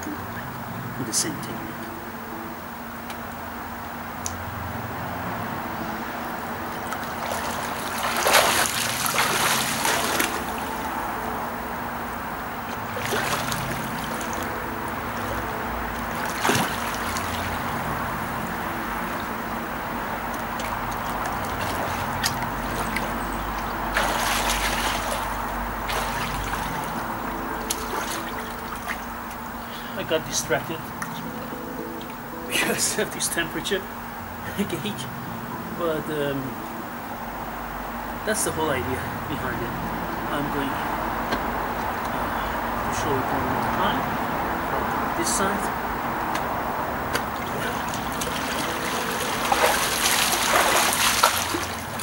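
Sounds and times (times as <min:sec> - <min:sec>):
steady low hum: 0:00.0 - 0:52.0
water splashing in pool: 0:06.8 - 0:11.1, 0:12.6 - 0:18.2, 0:20.1 - 0:29.9, 0:46.4 - 0:52.0.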